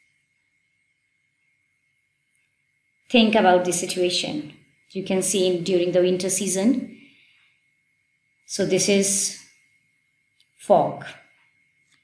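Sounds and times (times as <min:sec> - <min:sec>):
faint electronic tone: 0:00.0 - 0:12.0.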